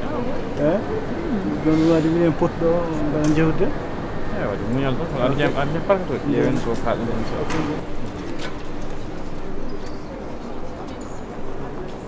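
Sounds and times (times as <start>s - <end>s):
city background noise: 0.0s - 12.0s.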